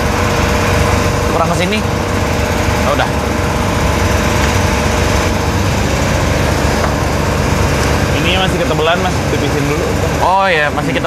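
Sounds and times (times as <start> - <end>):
machine droning hum: 0.0 - 11.0.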